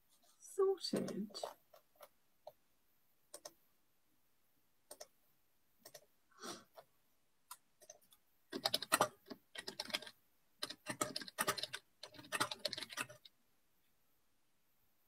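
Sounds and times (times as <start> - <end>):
typing on computer keyboard: 3.3 - 3.6, 4.9 - 5.1, 5.8 - 6.1, 7.5 - 13.3.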